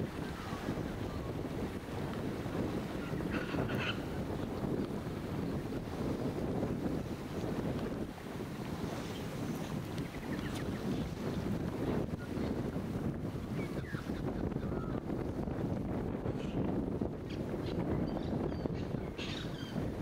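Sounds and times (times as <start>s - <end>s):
wind on microphone: 0.0s - 20.0s.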